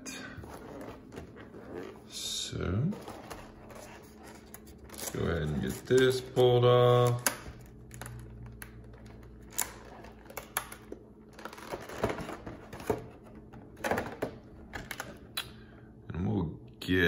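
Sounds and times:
plastic packaging crinkling: 3.0 - 13.0.

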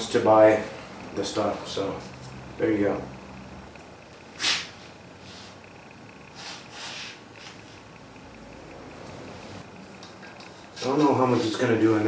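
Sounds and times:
low steady hum: 0.0 - 12.0
man sniffing: 4.4 - 5.6, 6.3 - 7.6.

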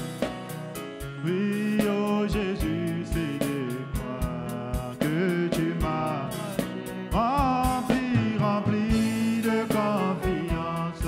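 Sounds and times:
drum beats: 0.0 - 11.0
worship band music: 0.0 - 11.0.

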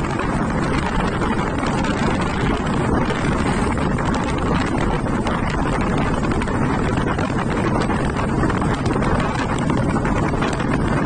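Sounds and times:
fine crackle: 0.0 - 9.7
wind buffeting microphone: 0.0 - 11.0.

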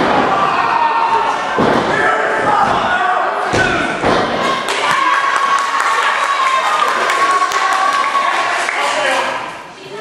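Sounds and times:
crowd chatter and shouting: 0.0 - 10.0.

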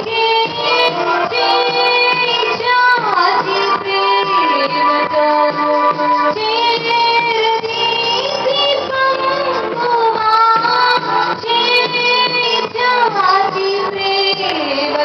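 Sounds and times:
woman singing into microphone: 0.0 - 15.0.

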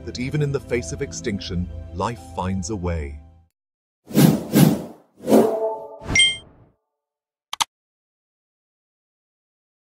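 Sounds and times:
bright ding: 6.1 - 6.5.

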